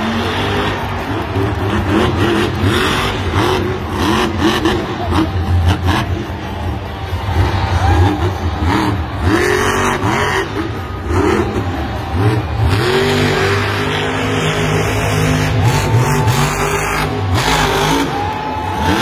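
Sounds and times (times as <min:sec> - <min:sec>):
monster truck engine revving: 0:00.0 - 0:19.0.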